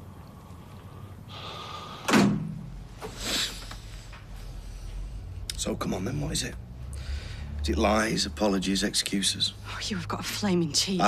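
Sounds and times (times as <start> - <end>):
door slamming: 2.1 - 2.6.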